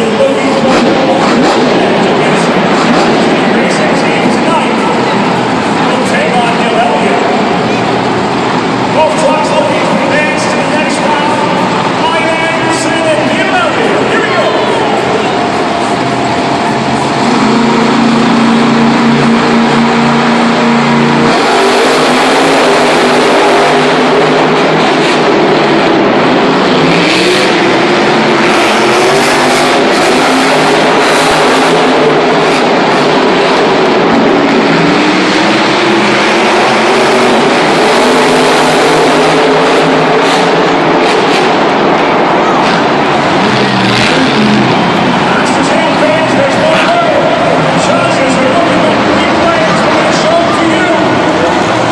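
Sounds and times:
truck engine revving loudly: 0.0 - 51.9.

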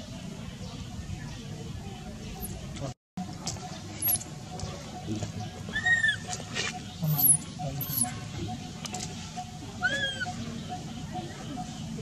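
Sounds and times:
baby monkey squealing: 5.7 - 8.2, 9.8 - 10.4.

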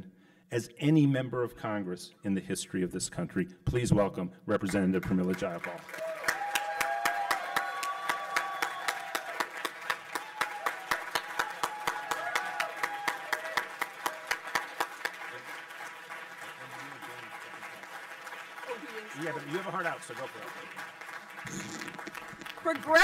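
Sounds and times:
audience applauding: 5.0 - 23.0
person clapping close to microphone: 5.0 - 23.0.

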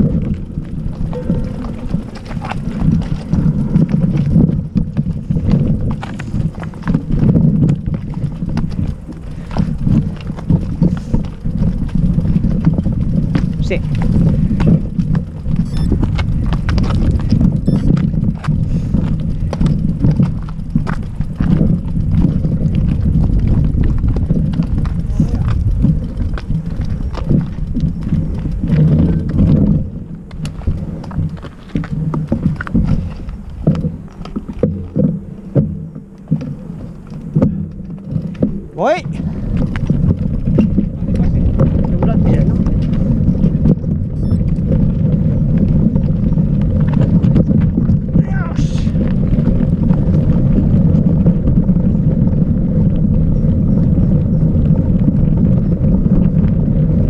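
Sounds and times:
footsteps crunching on gravel: 0.0 - 43.7
bikes rattling over stony ground: 0.0 - 57.0.

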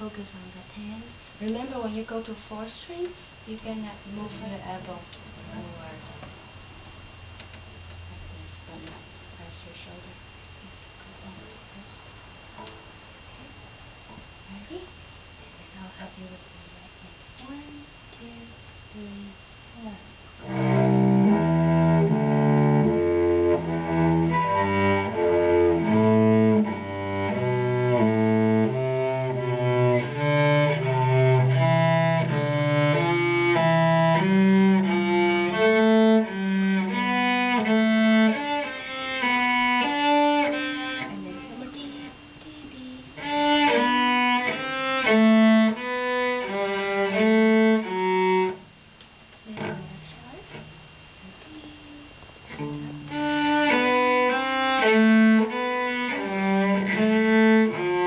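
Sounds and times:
cello bowed sustained notes: 0.9 - 6.1, 20.4 - 48.6, 51.4 - 58.0.

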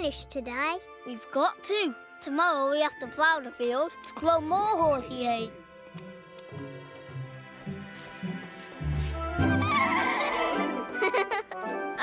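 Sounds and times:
background music: 0.0 - 12.0
cartoon horses whinnying: 9.5 - 10.8.

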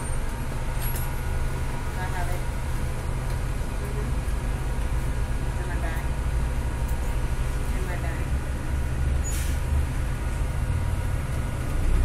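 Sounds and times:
bus engine and road rumble: 0.0 - 12.0.

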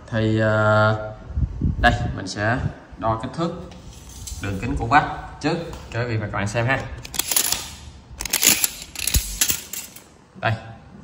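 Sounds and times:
tape measure clicks and scrapes: 7.0 - 10.0.

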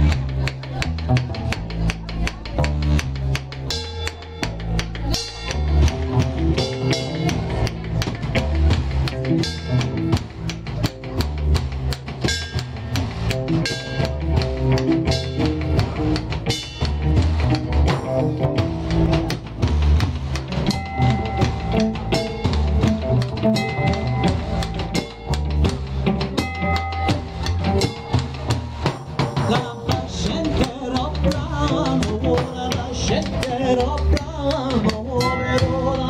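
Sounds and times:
bass drum beat: 0.0 - 36.0
folk band playing dance tune: 0.0 - 36.0
frame drum beat: 0.0 - 36.0.

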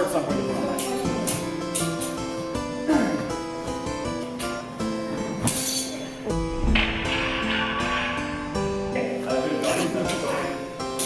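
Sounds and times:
harpsichord music: 0.0 - 11.0
low thump: 6.3 - 8.8.

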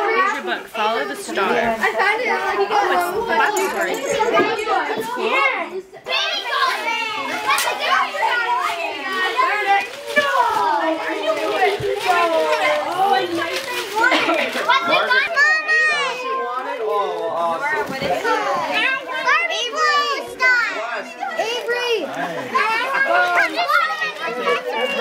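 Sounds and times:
children talking and exclaiming: 0.0 - 25.0.

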